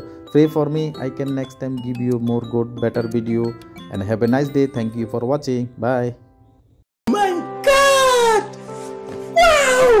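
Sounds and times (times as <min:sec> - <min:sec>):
background music with held tones: 0:00.0 - 0:10.0
high meow-like cries: 0:09.4 - 0:10.0.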